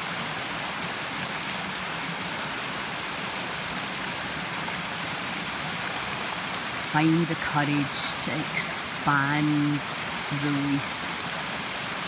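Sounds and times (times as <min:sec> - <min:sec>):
stream rushing over rocks: 0:00.0 - 0:12.0.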